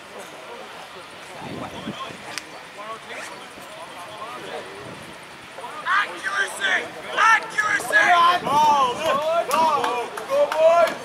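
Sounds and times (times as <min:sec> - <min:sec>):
open-air background noise: 0:00.0 - 0:11.0
distant players shouting: 0:05.6 - 0:11.0.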